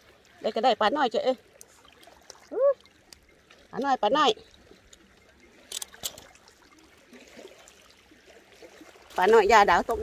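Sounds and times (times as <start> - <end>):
water lapping on rocky shore: 0.0 - 10.0.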